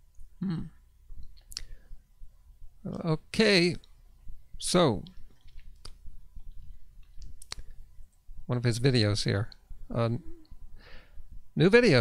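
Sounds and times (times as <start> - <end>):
man humming: 0.4 - 0.8, 9.9 - 10.6.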